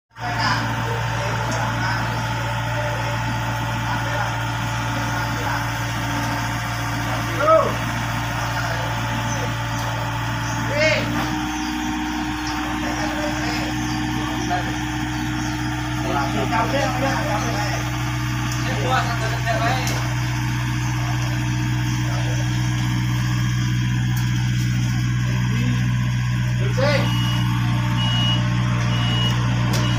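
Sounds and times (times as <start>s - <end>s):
excavator diesel engine running: 0.1s - 29.9s.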